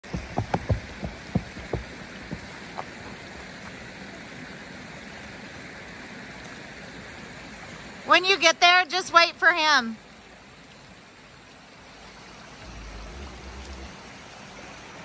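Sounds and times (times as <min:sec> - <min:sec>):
footsteps on dirt trail: 0:00.0 - 0:03.6
creek water rushing: 0:00.0 - 0:15.0.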